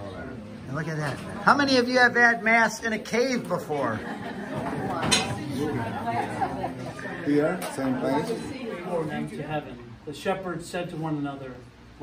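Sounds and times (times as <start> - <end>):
group chatter: 0.0 - 10.1.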